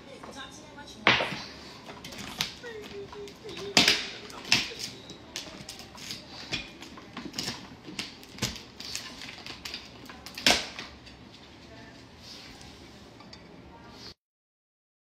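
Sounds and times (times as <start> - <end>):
kitchen clicks and knocks: 0.2 - 11.2.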